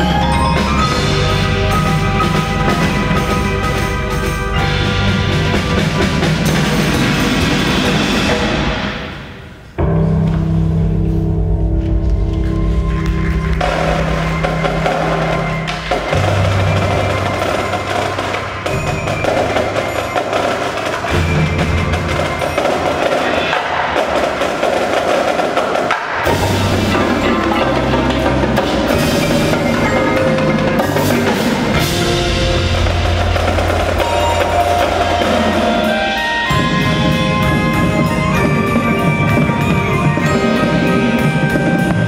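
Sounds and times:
marimbas and drums: 0.0s - 42.0s
percussion ensemble playing: 0.0s - 42.0s
sharp percussion hit: 13.6s - 42.0s.

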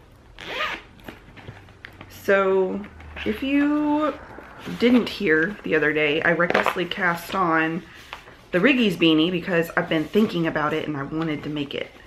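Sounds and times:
zipper pulled open: 0.4s - 1.2s.

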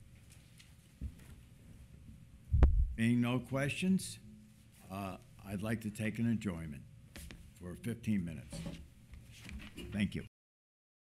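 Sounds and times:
faint steady hum: 0.0s - 10.3s
microphone bumped thud: 2.5s - 3.0s.

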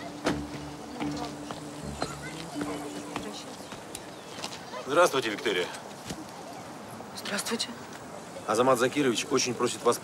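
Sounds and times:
footsteps on pavement: 0.0s - 6.5s.

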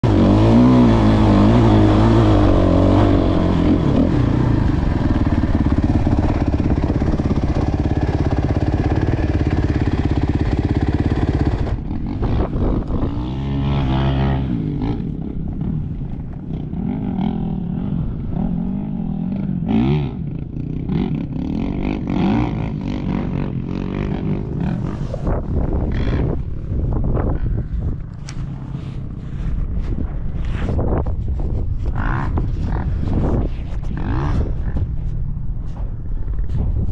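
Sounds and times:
dirt bike engine revving: 0.0s - 27.4s, 31.9s - 35.0s.

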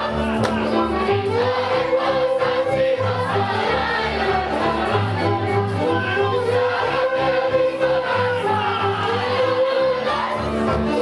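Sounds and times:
group singing folk song: 0.0s - 11.0s
music: 0.0s - 11.0s.

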